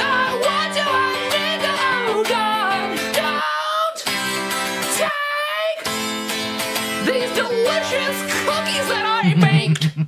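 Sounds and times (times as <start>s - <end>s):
guitar strumming chords: 0.0s - 3.4s, 5.8s - 9.7s.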